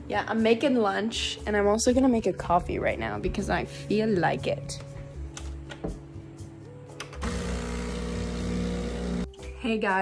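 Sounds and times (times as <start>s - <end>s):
background music: 0.0s - 10.0s
espresso machine buzzing: 7.2s - 9.3s.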